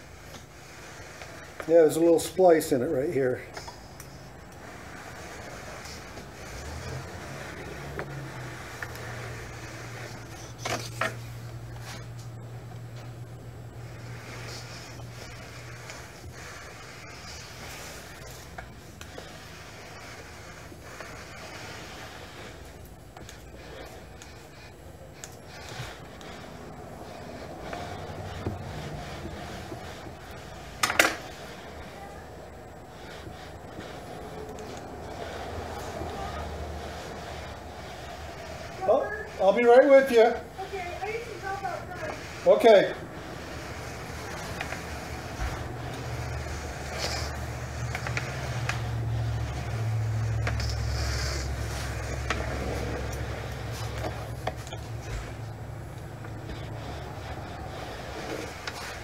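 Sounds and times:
iron sliding on wood: 0.0s - 59.0s.

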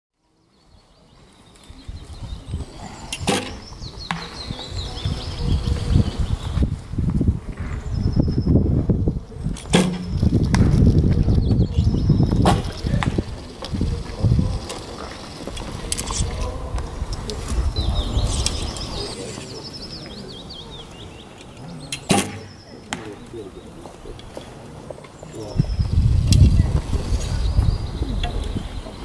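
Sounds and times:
birds chirping: 0.2s - 29.0s.

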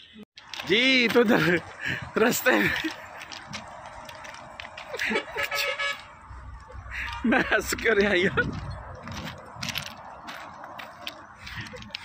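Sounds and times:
man laughing and speaking: 1.1s - 3.2s, 6.9s - 8.6s.

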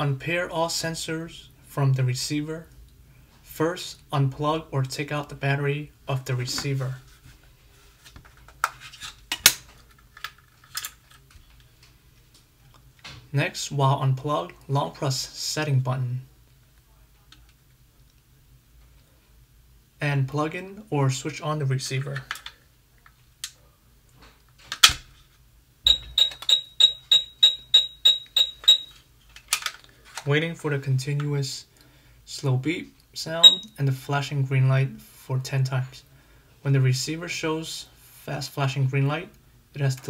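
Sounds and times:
short high beeps: 25.9s - 29.0s, 33.4s - 33.7s
plastic clicks: 29.3s - 30.3s.

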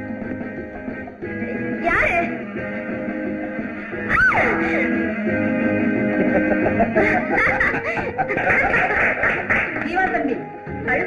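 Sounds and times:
woman laughing: 6.2s - 9.4s.

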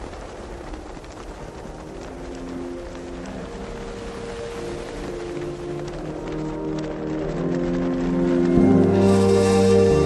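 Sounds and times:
steady hiss: 0.0s - 10.0s
held music notes: 2.9s - 10.0s.

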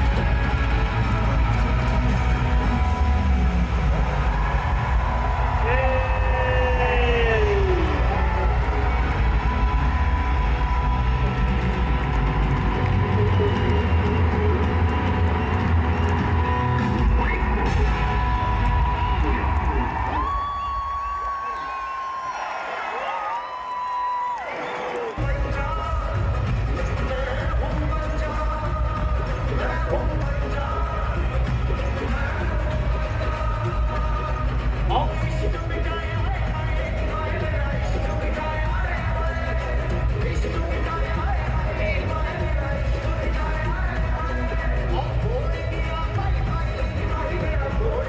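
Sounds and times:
pop music over sound system: 0.0s - 48.0s
person singing: 25.2s - 48.0s.

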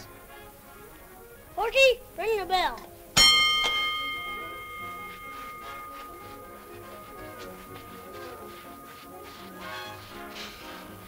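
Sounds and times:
quiet background music: 0.0s - 11.0s
boxing ring bell clang: 3.2s - 7.4s.

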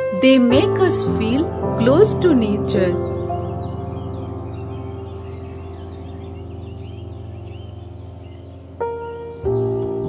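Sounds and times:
birds chirping: 0.0s - 10.0s
sustained music chord: 0.0s - 10.0s.

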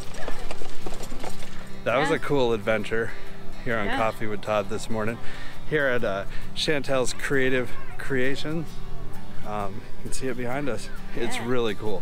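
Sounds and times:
footsteps on gravel: 0.0s - 2.0s
cart rattling over gravel: 0.0s - 2.4s.

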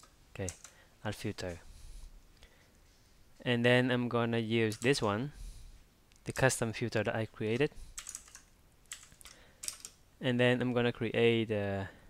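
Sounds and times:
computer keyboard typing: 0.0s - 0.8s, 4.7s - 5.0s, 7.5s - 10.0s.

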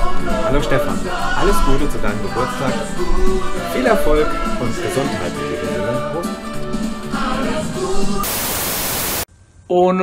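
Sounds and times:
background music: 0.0s - 8.3s
television static hiss: 8.2s - 9.3s.

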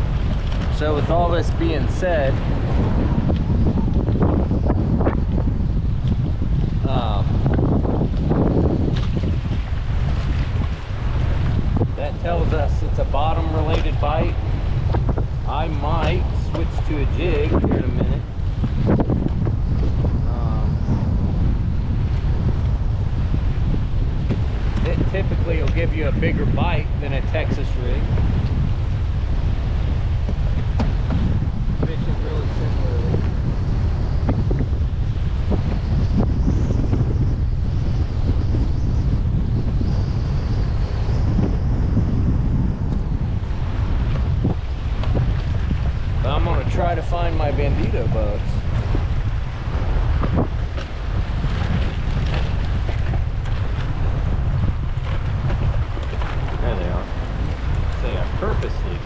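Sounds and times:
waves slapping kayak: 0.0s - 59.0s
wind buffeting microphone: 0.0s - 59.0s.

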